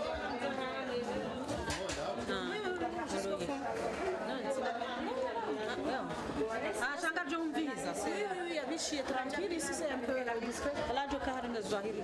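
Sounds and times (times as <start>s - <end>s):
group of people chattering: 0.0s - 12.0s.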